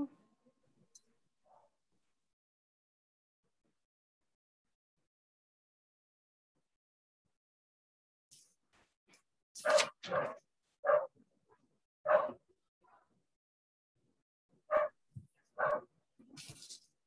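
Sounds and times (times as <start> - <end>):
dog barking: 9.6 - 11.2, 12.1 - 13.1, 14.7 - 15.0, 15.6 - 15.9.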